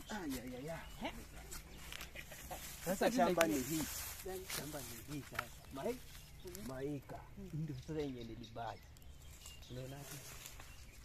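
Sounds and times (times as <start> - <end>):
person speaking: 2.8 - 8.0.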